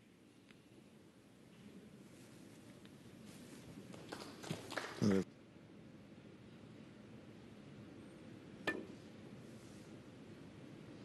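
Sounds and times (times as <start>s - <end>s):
cue striking ball click: 8.7s - 9.0s.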